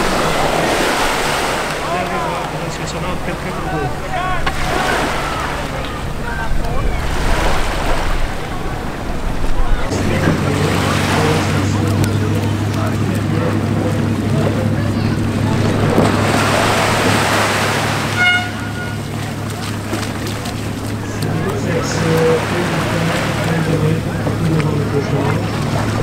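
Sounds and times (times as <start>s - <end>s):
indistinct voices: 0.0s - 26.0s
small waves washing onto sand: 0.0s - 26.0s
wind on microphone: 3.7s - 26.0s.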